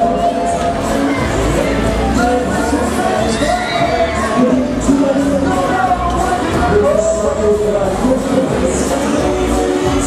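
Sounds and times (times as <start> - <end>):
crowd and riders shouting: 0.0 - 7.1
funfair music: 0.0 - 10.0.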